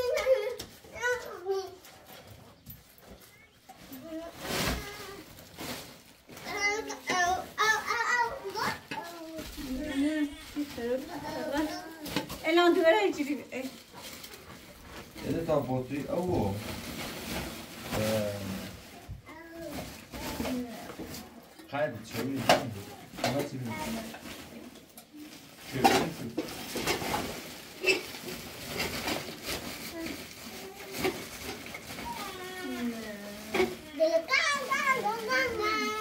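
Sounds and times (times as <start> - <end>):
high child's voice: 0.0 - 1.9, 3.2 - 5.3, 6.4 - 10.4, 19.0 - 21.0, 29.9 - 31.2, 32.0 - 36.0
people and children talking: 32.0 - 36.0.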